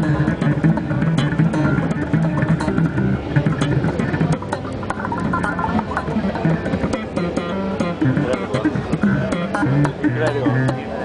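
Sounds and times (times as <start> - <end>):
electric bass plucked notes: 0.0 - 11.0.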